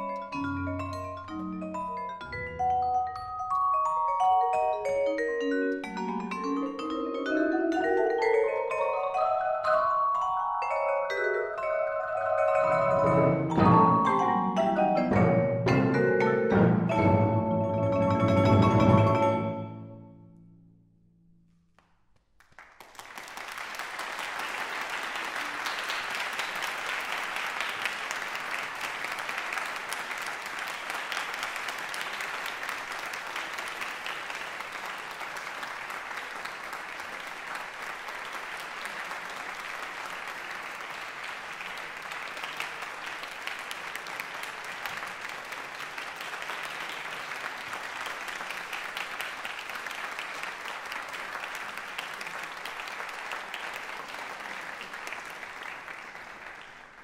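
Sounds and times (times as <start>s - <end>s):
audience applauding: 21.8s - 57.0s.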